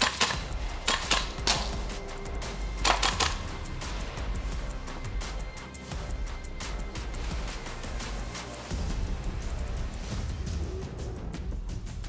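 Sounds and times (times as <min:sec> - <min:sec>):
sharp rifle shots: 0:00.0 - 0:01.7, 0:02.8 - 0:03.4
background music: 0:00.0 - 0:12.0.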